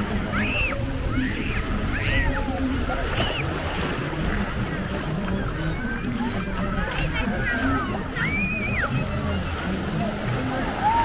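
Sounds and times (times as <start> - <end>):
people calling in distance: 0.0 - 11.0
surf and waves breaking: 0.0 - 11.0
wind rumbling on microphone: 0.0 - 11.0.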